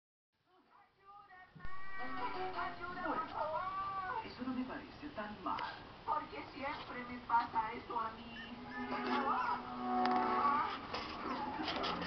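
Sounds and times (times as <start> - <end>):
music playing: 1.6 - 3.6, 8.6 - 11.2
young pet crying: 3.1 - 4.4, 8.3 - 11.6.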